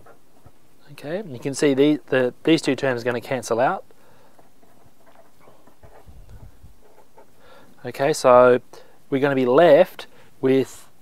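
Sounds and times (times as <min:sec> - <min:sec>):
steady low hiss: 0:00.0 - 0:11.0
marker scratching on paper: 0:04.4 - 0:07.4
soft low thumps: 0:05.4 - 0:07.2.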